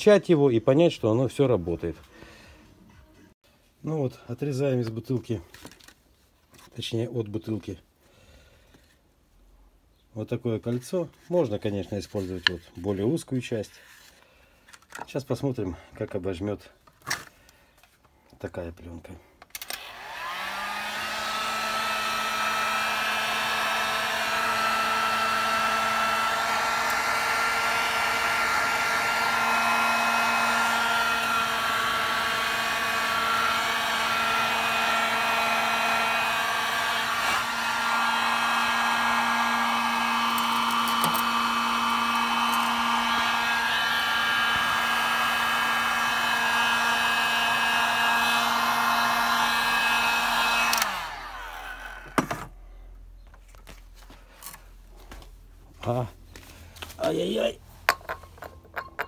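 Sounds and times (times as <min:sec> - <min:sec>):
heat gun running: 0:19.6 - 0:52.5.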